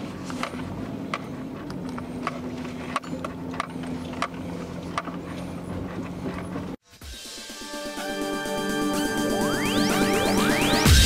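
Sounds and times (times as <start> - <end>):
car engine running: 0.0 - 6.8.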